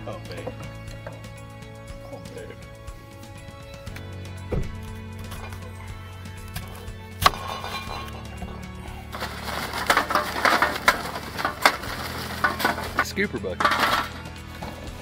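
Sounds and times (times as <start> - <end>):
background music: 0.0 - 15.0
charcoal briquettes clattering: 0.0 - 15.0.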